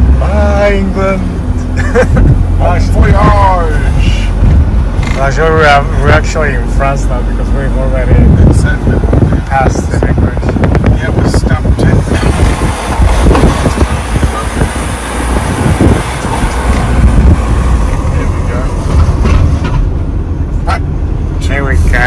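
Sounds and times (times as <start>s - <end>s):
tyres and engine rumble: 0.0s - 22.0s.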